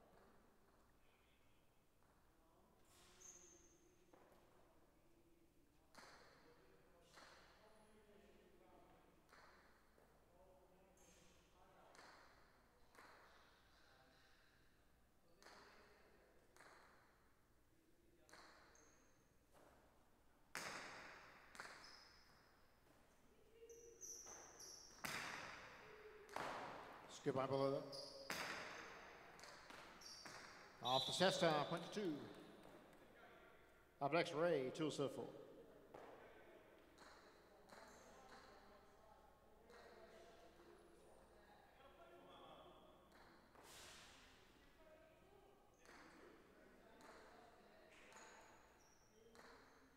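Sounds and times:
ball cracking against walls: 20.5 - 21.9, 24.0 - 27.1, 28.2 - 30.8
high squeaks: 27.8 - 28.9.

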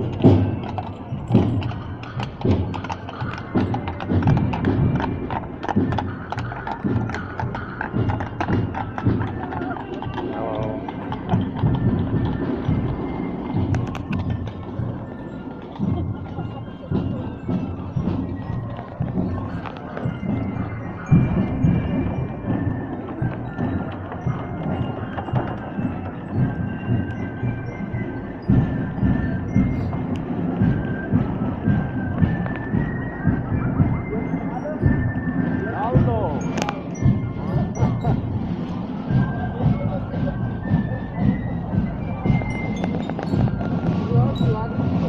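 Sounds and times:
crowd chatter: 0.0 - 45.0
hooves clip-clopping on cobblestones: 0.0 - 45.0.

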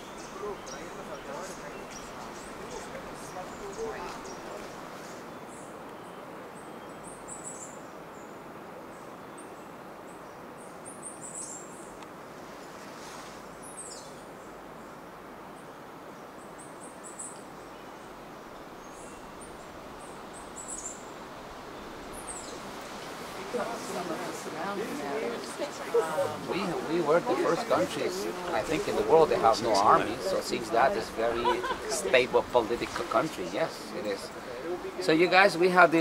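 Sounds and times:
small birds chirping and trilling: 0.0 - 12.0, 16.4 - 36.0
steady background hiss: 0.0 - 36.0.

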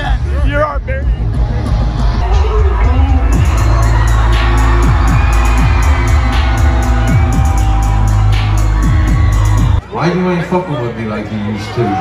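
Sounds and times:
live hip-hop music: 0.0 - 9.8
sliding bass notes: 0.0 - 9.8
crowd cheering: 1.5 - 12.0
rapid hi-hats: 1.9 - 9.8.

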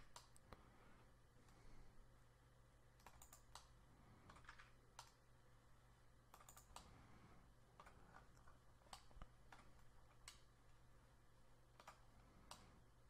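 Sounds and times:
mouse and keyboard clicks: 0.0 - 0.5, 3.0 - 5.2, 6.3 - 6.9, 7.8 - 10.5, 11.8 - 12.7
low steady hum: 0.0 - 13.0.

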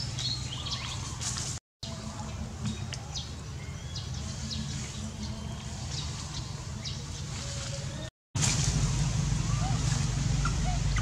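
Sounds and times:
steady low rumble: 8.4 - 11.0.

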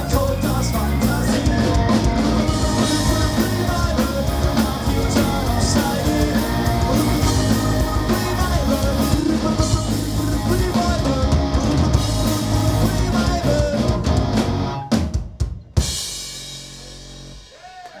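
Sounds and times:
distorted electric guitars ringing: 0.0 - 15.0
punk rock band playing live: 0.0 - 17.7
pounding drum kit: 0.0 - 18.0.

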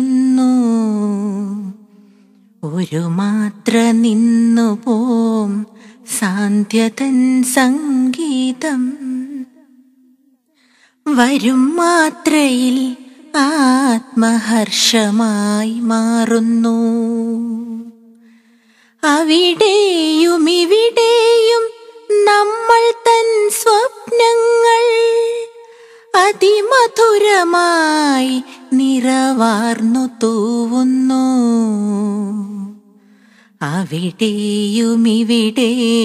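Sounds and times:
woman singing chant-like song: 2.6 - 9.8, 19.0 - 32.9, 33.6 - 36.0.

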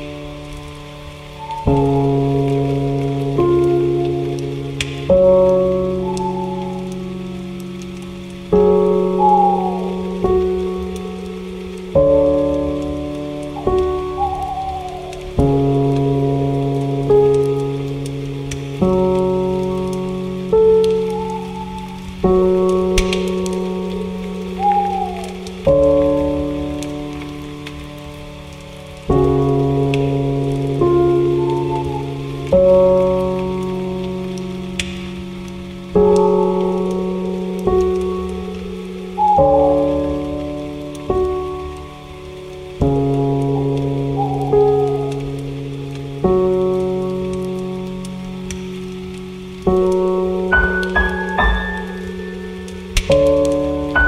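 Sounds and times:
slow soft piano music: 0.0 - 54.0
soft rain-like hiss: 0.0 - 54.0.

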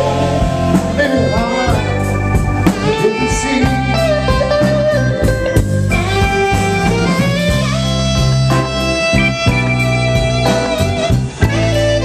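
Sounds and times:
blues band playing: 0.0 - 12.0
electric guitar bending notes: 0.0 - 12.0.

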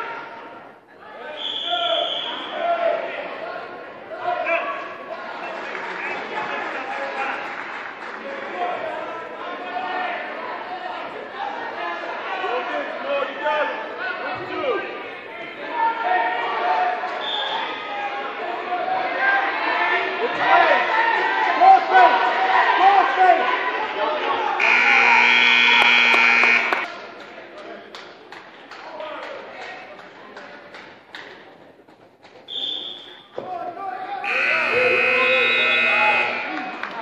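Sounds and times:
spectators shouting: 17.7 - 26.9, 34.2 - 37.0
people calling out: 24.6 - 26.9, 34.0 - 37.0
scoreboard buzzer: 24.6 - 26.9, 34.2 - 36.9.

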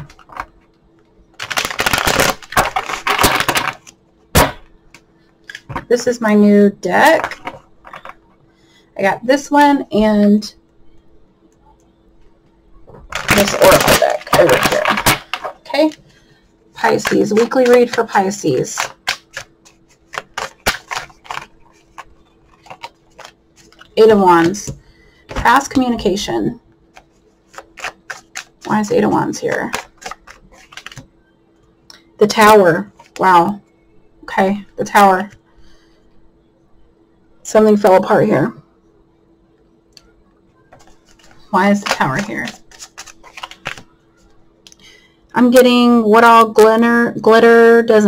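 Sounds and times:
cards being shuffled: 16.8 - 24.6, 26.9 - 31.1, 40.7 - 43.9
cards shuffling flutter: 26.9 - 29.0, 29.7 - 31.0, 40.8 - 43.9.

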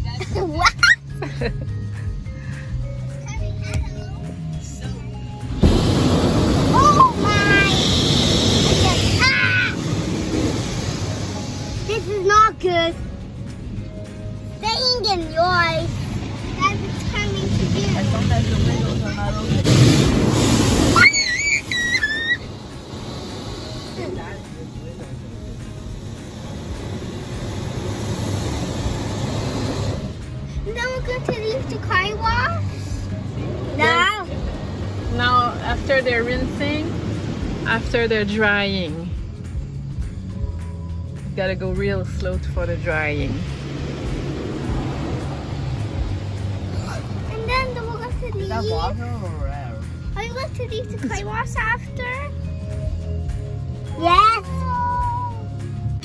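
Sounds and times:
car wash rumble: 0.0 - 56.0
water spraying on car: 4.9 - 52.9
air dryer blowers rushing: 5.4 - 12.4, 16.0 - 39.0, 41.8 - 48.3
high wavering whistle: 20.9 - 22.6.

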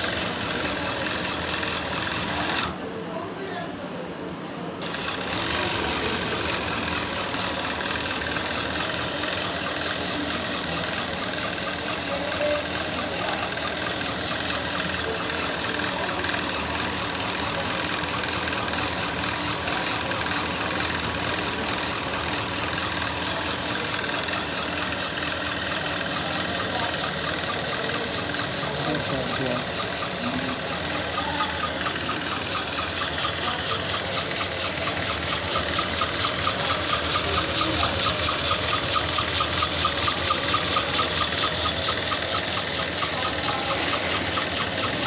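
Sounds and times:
sewing machine whirring: 0.0 - 3.0, 4.8 - 45.0.

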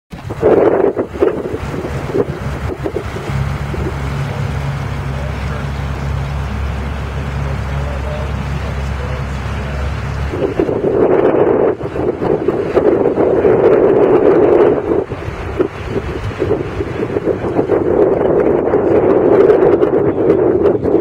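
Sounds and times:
outboard motor droning: 0.1 - 21.0
wind buffeting microphone: 0.1 - 21.0.

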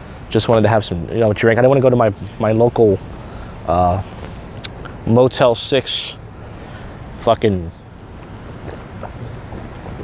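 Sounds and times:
wind noise on microphone: 6.2 - 10.0.

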